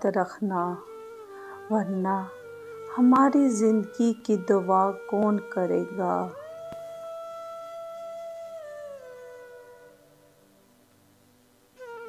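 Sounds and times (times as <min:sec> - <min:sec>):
long held music note: 0:00.6 - 0:10.6.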